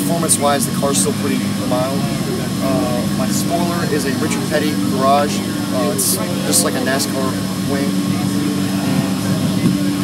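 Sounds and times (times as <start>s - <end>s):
faint voices: 0.0s - 10.0s
low mechanical drone: 0.0s - 10.0s.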